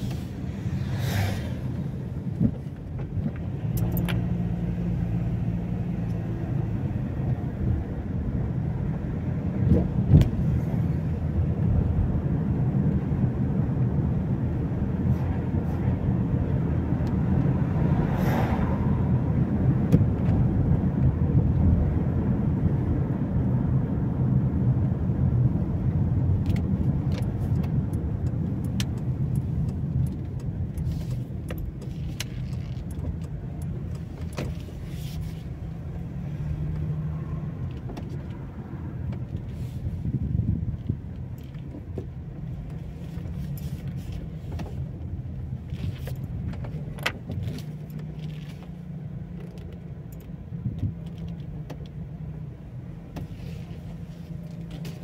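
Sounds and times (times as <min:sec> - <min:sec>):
engine and tyre rumble: 0:00.0 - 0:55.0.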